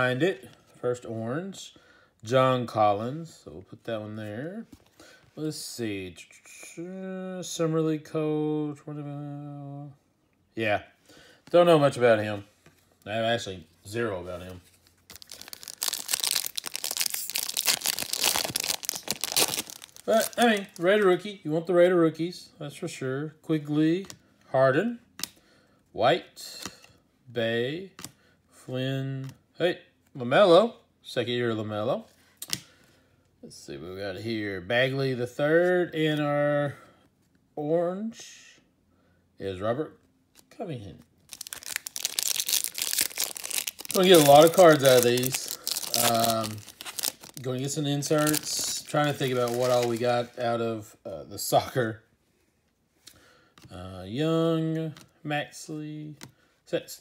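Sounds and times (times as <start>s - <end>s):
foil wrapper tearing and crinkling: 15.1s - 20.9s, 41.2s - 50.4s.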